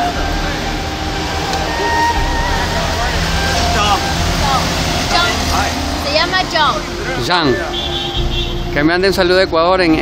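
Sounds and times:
people talking: 0:00.0 - 0:07.8
road traffic rumble: 0:00.0 - 0:10.0.

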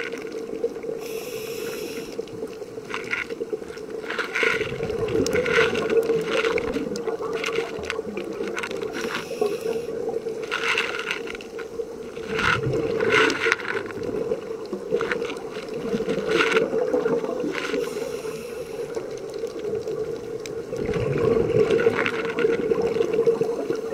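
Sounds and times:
exhaled bubbles from regulator: 0:00.0 - 0:23.9.

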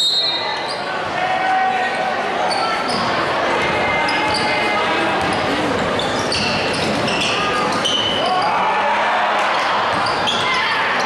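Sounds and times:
sneaker squeaks: 0:00.0 - 0:01.1, 0:02.4 - 0:08.6, 0:09.6 - 0:11.0
crowd chattering: 0:00.0 - 0:11.0.

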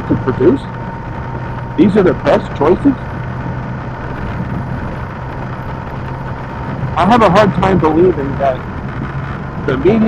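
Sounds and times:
motorcycle engine hum: 0:00.0 - 0:10.0
wind and road noise: 0:00.0 - 0:10.0.

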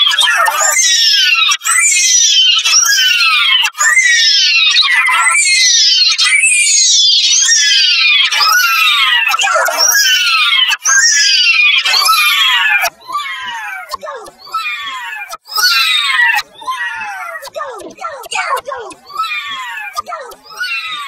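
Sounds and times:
distorted high-pitched voice shouting: 0:00.0 - 0:21.0.

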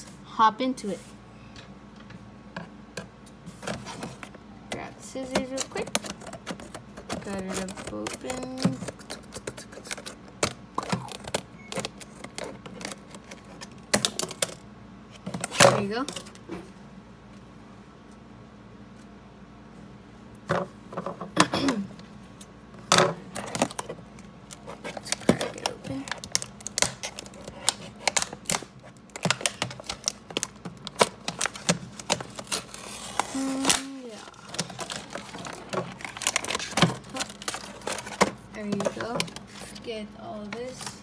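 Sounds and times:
plastic packaging crinkling: 0:05.2 - 0:14.6, 0:23.3 - 0:41.0.

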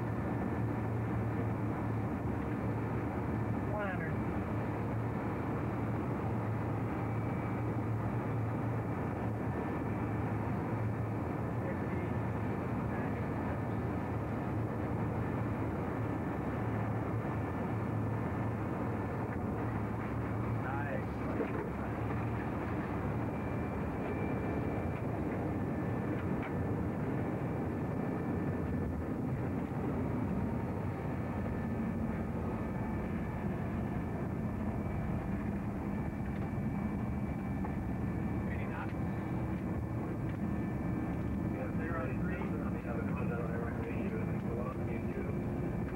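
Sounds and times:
constant low hum: 0:00.0 - 0:45.9
engine and airflow rush: 0:00.0 - 0:45.9.

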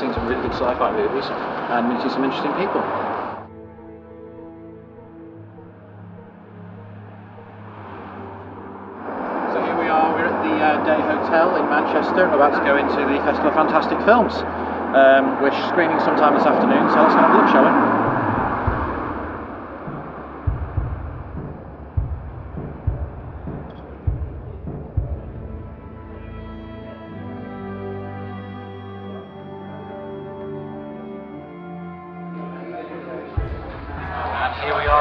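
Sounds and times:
rush of background noise: 0:00.0 - 0:03.5, 0:06.8 - 0:24.2
distant traffic rumble: 0:00.0 - 0:30.0
music drone: 0:00.0 - 0:35.0
footsteps thudding: 0:18.5 - 0:25.3.

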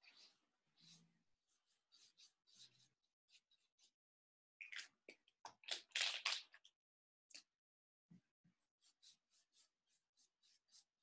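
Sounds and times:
drawing tool scratching paper: 0:00.0 - 0:04.0, 0:08.8 - 0:11.0.

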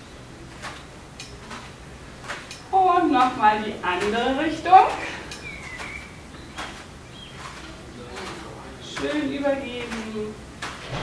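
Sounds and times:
rubber bands and clothing rustling: 0:00.0 - 0:11.0.

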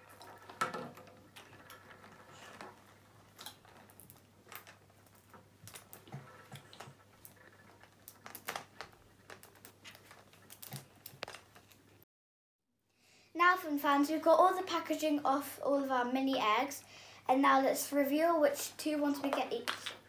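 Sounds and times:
wrapping rustling: 0:01.2 - 0:12.0.

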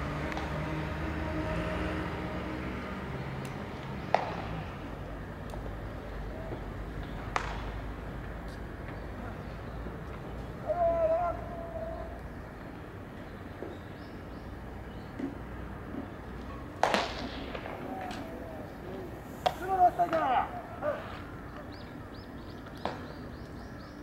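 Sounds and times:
bat cracking a baseball: 0:04.0 - 0:04.6, 0:07.0 - 0:07.9, 0:16.8 - 0:18.4, 0:19.4 - 0:20.4
players shouting: 0:10.4 - 0:12.4, 0:16.9 - 0:21.7.

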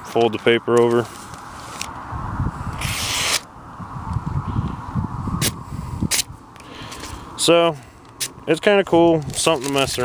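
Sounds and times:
knife slicing paper: 0:02.8 - 0:03.5
paper rustling: 0:09.2 - 0:10.0.

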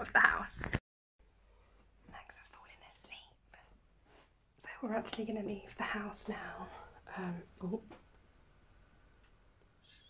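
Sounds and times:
woman whispering faintly: 0:02.2 - 0:03.7.

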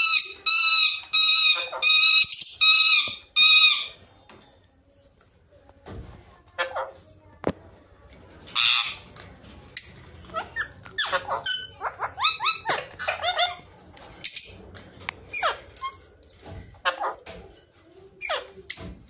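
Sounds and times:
parakeets calling: 0:00.0 - 0:04.0, 0:08.5 - 0:09.1, 0:09.7 - 0:14.6.

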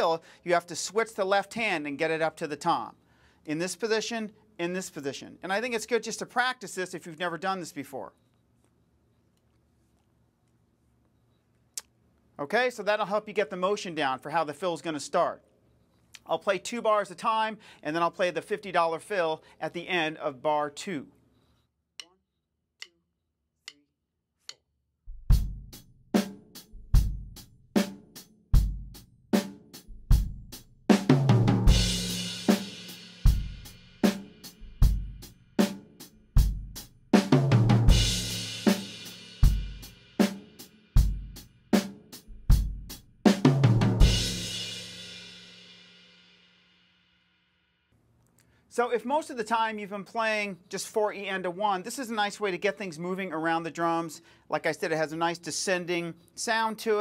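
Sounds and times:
drum kit playing rock beat: 0:25.2 - 0:45.3
drum fill: 0:30.1 - 0:35.2, 0:41.0 - 0:45.1
crash cymbal: 0:44.2 - 0:47.6.

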